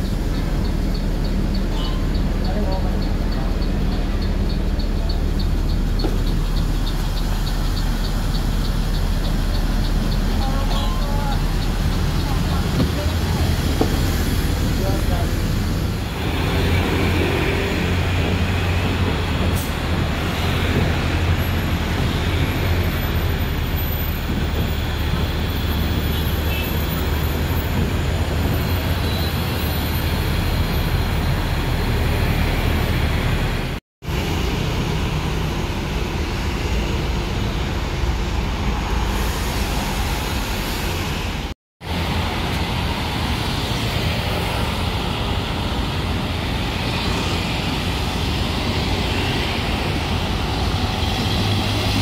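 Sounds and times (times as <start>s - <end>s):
bus diesel engine running: 0.0s - 52.0s
street traffic: 0.0s - 52.0s.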